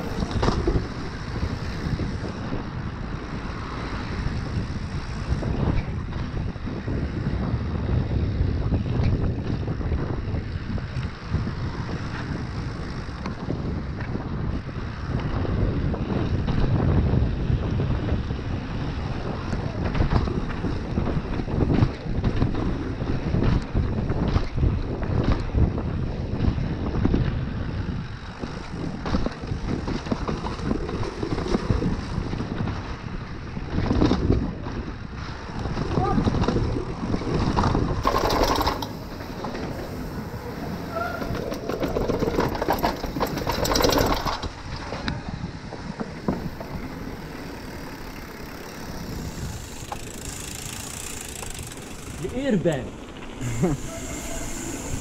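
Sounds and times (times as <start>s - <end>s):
bike rattling over cobblestones: 0.0s - 55.0s
wind rumbling on microphone: 0.0s - 55.0s.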